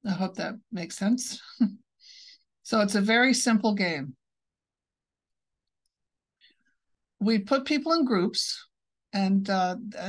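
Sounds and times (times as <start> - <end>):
woman's voice: 0.0 - 1.8, 2.6 - 4.2, 7.2 - 10.0.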